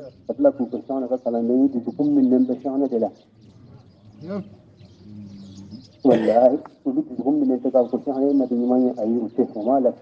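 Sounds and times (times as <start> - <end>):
man chanting melodically: 0.0 - 10.0.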